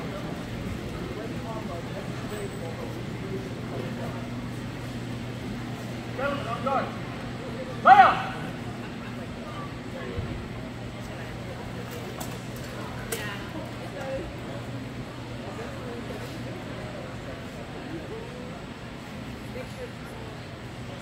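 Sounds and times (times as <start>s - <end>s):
person shouting a call: 7.8s - 8.5s.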